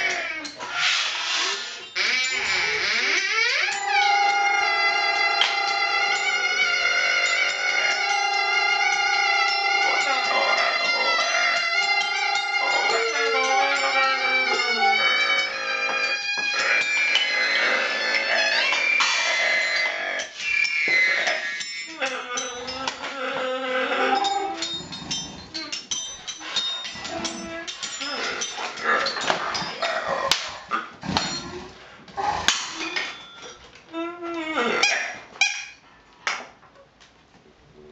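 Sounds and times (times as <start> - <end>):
squeaks and bent call-like sounds: 0.0 - 30.0
hand-held wind instrument tones: 3.2 - 28.4.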